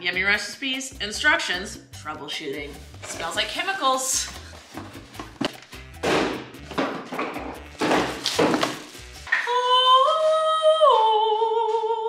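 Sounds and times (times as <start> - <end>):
cardboard packaging rustling: 3.1 - 5.8, 7.7 - 9.3.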